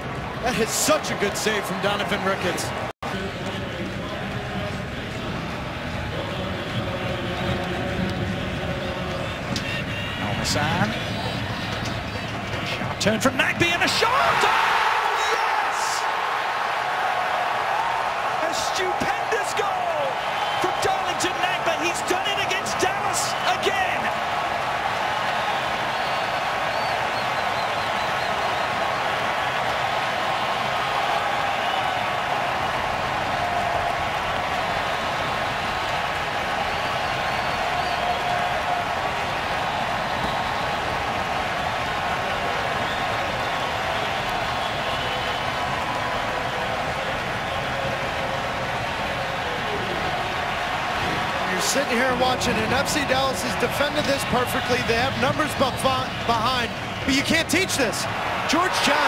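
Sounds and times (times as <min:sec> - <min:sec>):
stadium crowd cheering and singing: 0:00.0 - 0:59.0.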